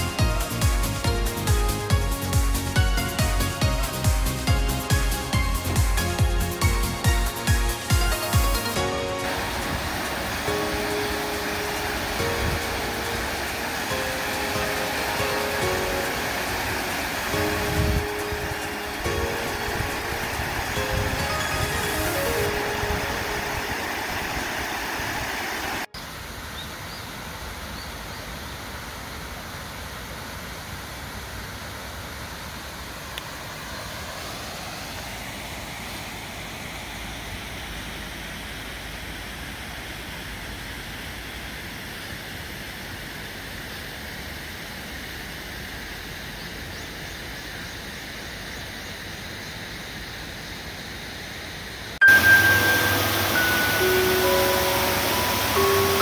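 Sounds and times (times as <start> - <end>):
background music: 0.0 - 24.1, 52.0 - 56.0
stream rushing over rocks: 0.0 - 26.5, 28.3 - 46.7, 51.9 - 56.0.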